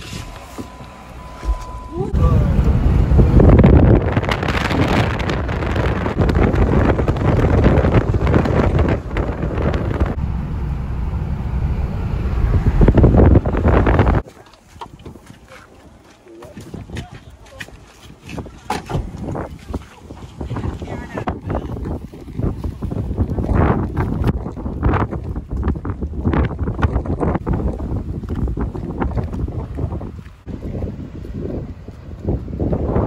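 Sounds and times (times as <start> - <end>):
road noise inside car: 0.0 - 14.2
wind buffeting microphone: 1.2 - 33.0.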